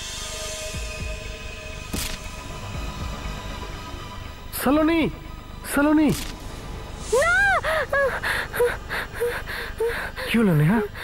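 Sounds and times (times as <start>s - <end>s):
woman panting in frightened gasps: 7.1s - 10.3s.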